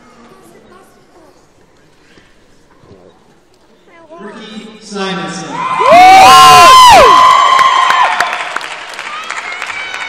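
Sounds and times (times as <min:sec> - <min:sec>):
audience screaming and whooping: 0:05.6 - 0:10.0
crowd cheering and clapping: 0:05.6 - 0:10.0.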